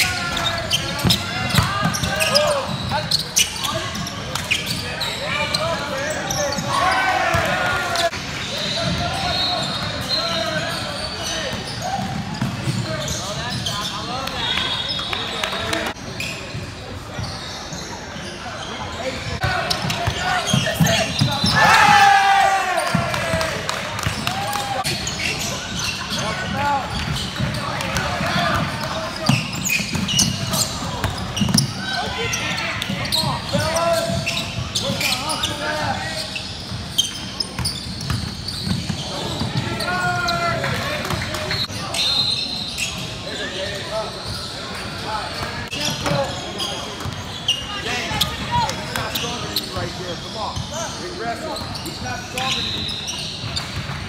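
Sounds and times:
voices calling and shouting: 0.0s - 54.0s.

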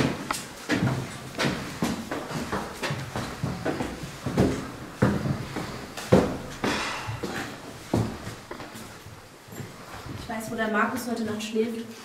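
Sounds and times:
footsteps climbing stairs: 0.0s - 11.4s.

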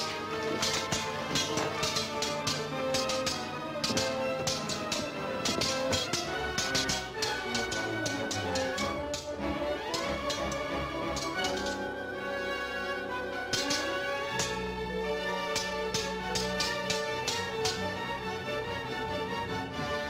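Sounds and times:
sword blades clashing: 0.0s - 11.8s, 13.5s - 14.6s, 15.5s - 17.9s
orchestral film music: 0.0s - 20.0s.

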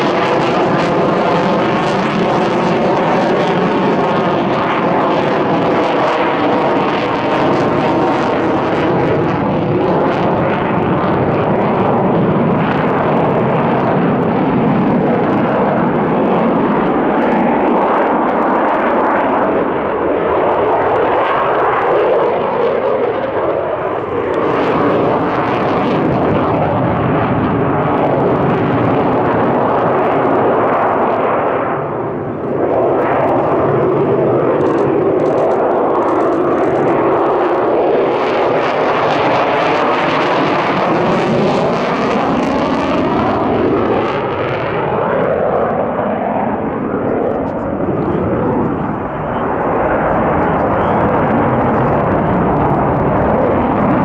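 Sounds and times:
jet engines roaring: 0.0s - 54.0s.

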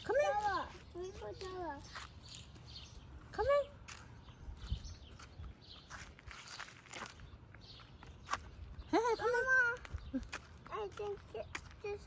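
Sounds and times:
footsteps on paved street: 0.0s - 12.0s.

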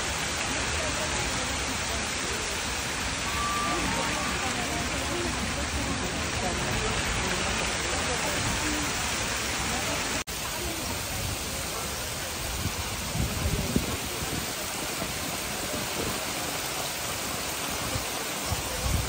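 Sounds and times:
heavy rain on water: 0.0s - 19.0s.

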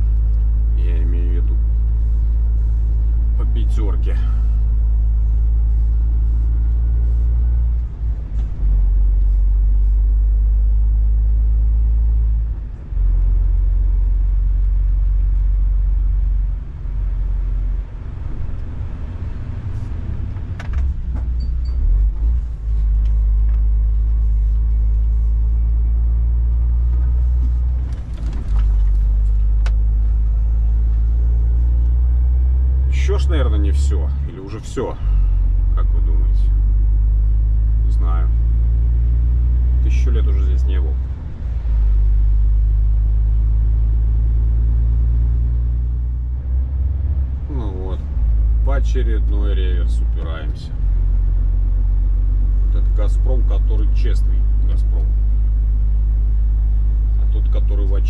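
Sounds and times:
truck engine rumble: 0.0s - 58.0s
tyres on wet road: 0.0s - 58.0s.

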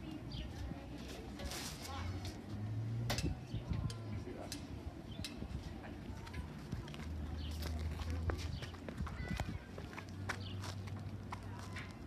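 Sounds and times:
footsteps on concrete: 6.3s - 12.0s.

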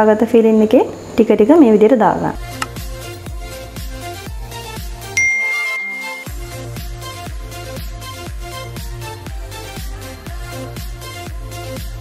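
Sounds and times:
background music with steady beat: 2.4s - 12.0s
notification bell ding: 5.2s - 6.3s.

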